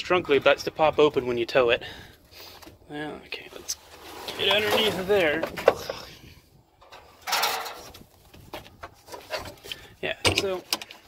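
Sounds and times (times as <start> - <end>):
floor covering scraping rustle: 3.5 - 5.3
debris clicks and knocks: 6.8 - 7.9.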